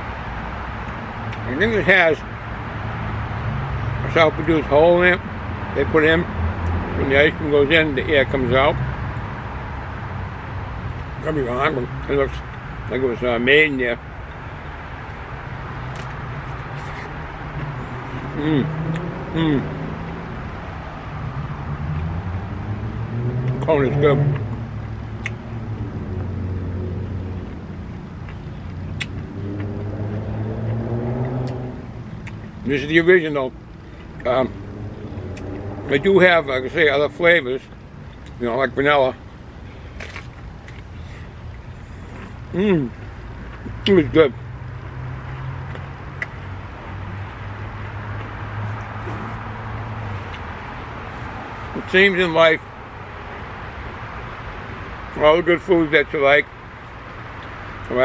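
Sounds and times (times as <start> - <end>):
outdoor background noise: 0.0 - 58.0
ice cream cone crunch: 14.9 - 19.6, 24.4 - 26.0, 27.0 - 33.3, 39.7 - 51.9
faint chewing: 39.8 - 43.9.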